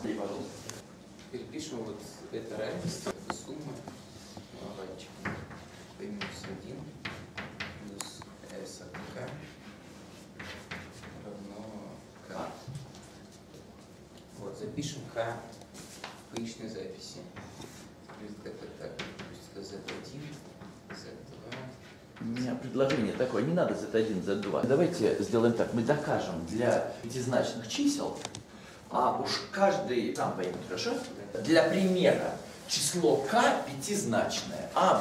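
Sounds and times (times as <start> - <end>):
chalk tapping: 5.2 - 11.2, 18.9 - 23.2
chalk on blackboard: 8.9 - 11.3, 17.4 - 18.2.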